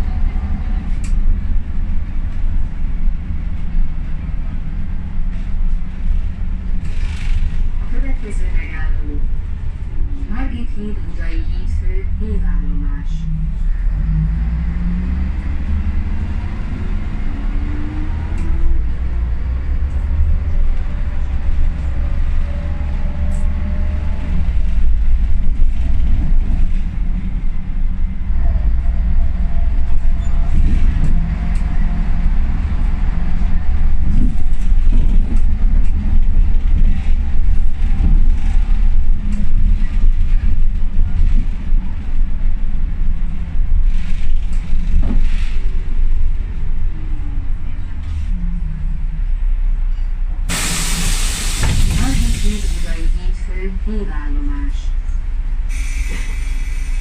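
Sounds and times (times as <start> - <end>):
bus body rattling and knocking: 0.0 - 10.1, 18.2 - 28.3, 29.0 - 46.9, 50.5 - 52.8
bus diesel engine rumble: 0.0 - 57.0.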